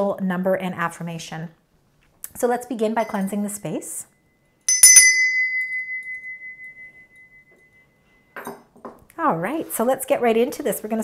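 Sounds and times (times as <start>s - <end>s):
brass hand bell ringing: 4.7s - 7.9s.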